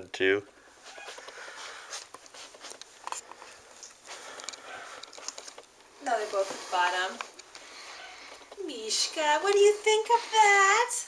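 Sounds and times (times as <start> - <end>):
cats rustling in cat tree: 0.8 - 10.5.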